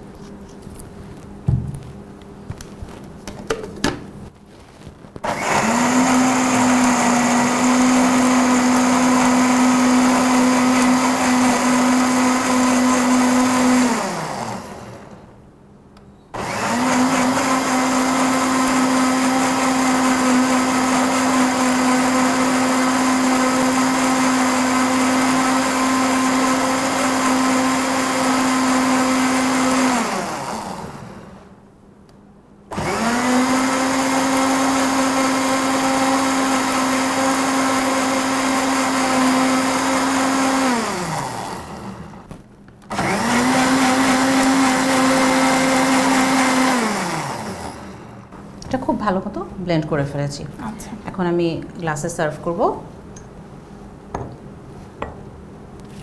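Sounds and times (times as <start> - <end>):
electric blender running: 5.2 - 15.2, 16.4 - 31.5, 32.7 - 42.3, 42.9 - 48.4.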